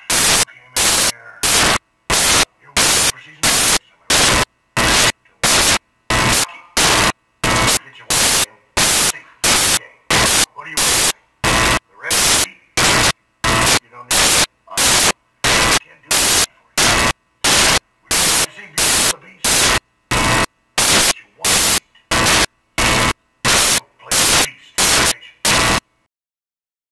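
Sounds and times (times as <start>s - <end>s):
static hiss bursts: 0.0s - 26.0s
film dialogue: 0.1s - 25.8s.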